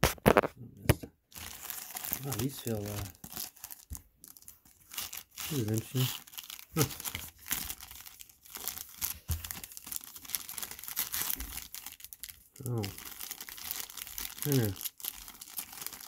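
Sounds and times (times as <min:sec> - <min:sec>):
foil wrappers crinkling: 0:01.3 - 0:16.0.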